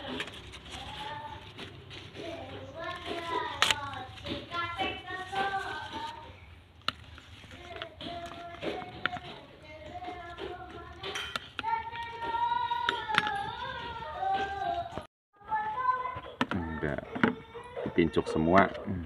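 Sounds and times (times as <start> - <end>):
children talking: 0.0 - 6.4, 7.4 - 19.0
children singing: 7.5 - 17.8.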